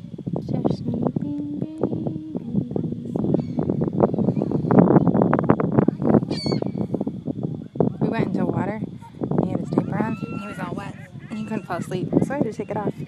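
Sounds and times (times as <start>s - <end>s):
gull call: 9.7s - 12.9s.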